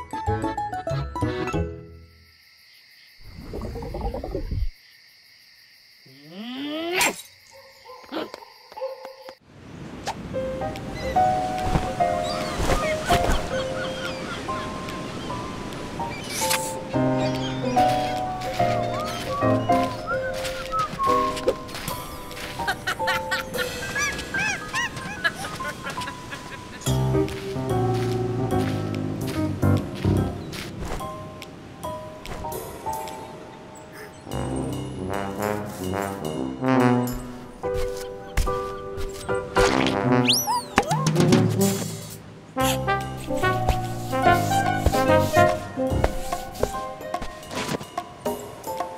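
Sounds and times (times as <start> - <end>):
bouncy cartoon music: 0.0 - 2.0, 34.3 - 47.4.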